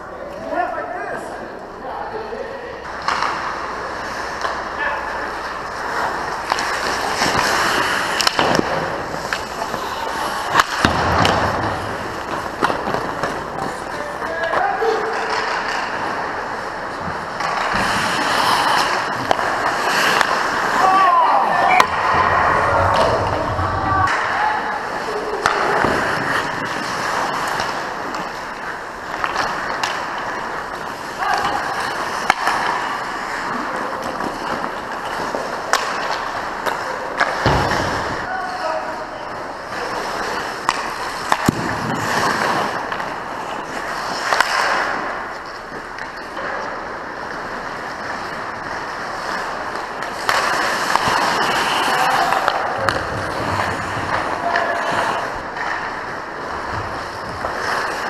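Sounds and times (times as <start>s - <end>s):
skates scraping on ice: 2.4s - 58.0s
hockey sticks and puck clacking: 2.8s - 58.0s.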